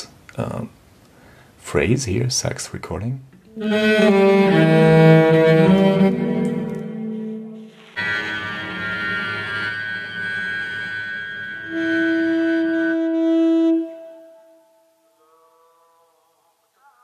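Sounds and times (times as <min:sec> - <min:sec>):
cello phrases: 0:03.4 - 0:17.0
saxophone long held notes: 0:03.5 - 0:17.0.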